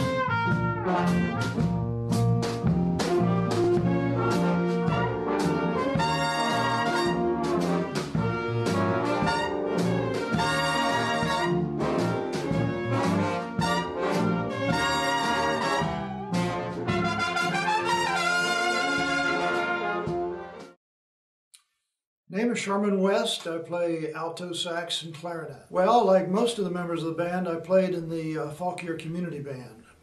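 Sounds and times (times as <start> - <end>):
swing big band playing: 0.0 - 20.8
trumpet section chords: 0.0 - 20.8.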